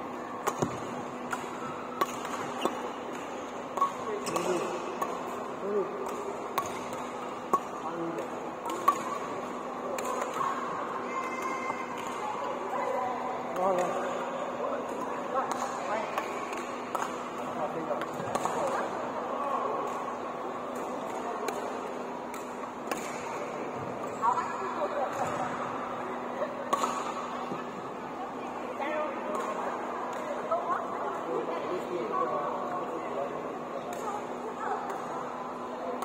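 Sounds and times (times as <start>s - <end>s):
hubbub of background voices: 0.0s - 36.0s
sports hall background noise: 0.0s - 36.0s
racket hitting shuttlecock: 0.4s - 10.8s, 11.4s - 12.2s, 14.9s - 18.9s, 20.8s - 24.2s, 26.6s - 27.7s.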